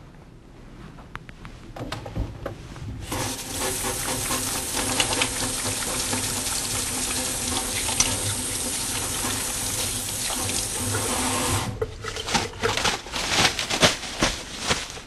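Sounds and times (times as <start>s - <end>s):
water running from faucet: 3.0s - 11.8s.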